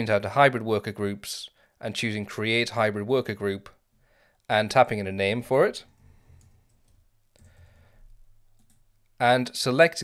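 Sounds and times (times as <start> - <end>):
computer keyboard keystrokes: 8.6 - 8.8.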